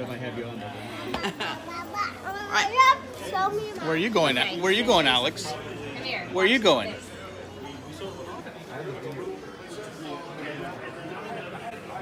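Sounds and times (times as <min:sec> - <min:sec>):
child vocalising and shouting: 0:01.7 - 0:03.9.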